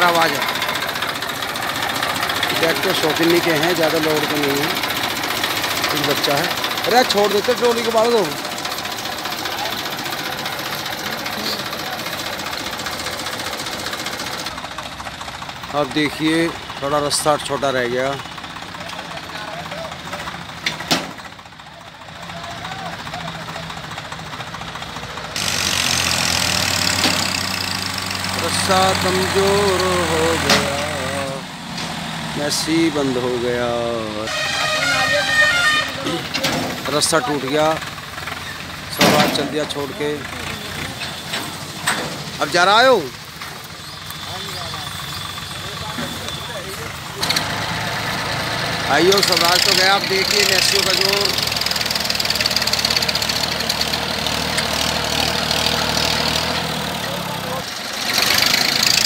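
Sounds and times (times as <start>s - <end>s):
tractor diesel engine idling: 0.0s - 59.0s.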